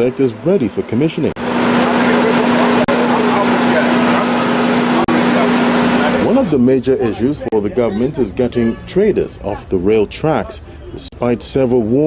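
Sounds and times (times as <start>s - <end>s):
faint voices of people: 1.6s - 12.0s.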